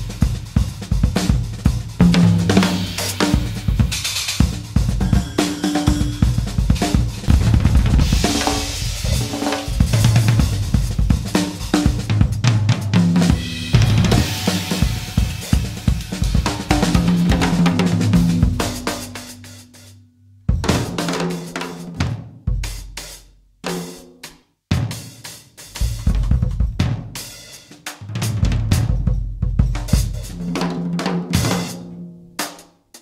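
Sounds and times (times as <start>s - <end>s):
bass drum: 0.0s - 21.3s, 25.7s - 27.2s, 28.0s - 31.6s
snare and tom drumming: 0.0s - 33.0s
cymbal washes: 2.4s - 12.0s, 13.3s - 20.0s.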